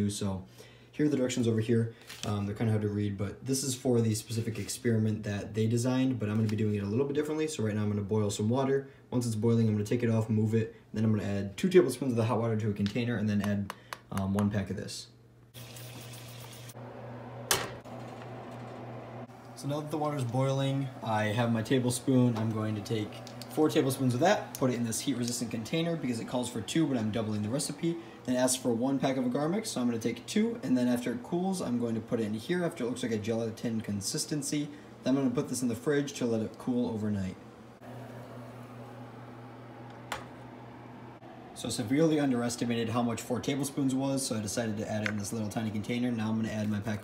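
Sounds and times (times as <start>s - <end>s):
water boiling hiss: 15.6s - 16.8s
steady low hum: 16.8s - 46.9s.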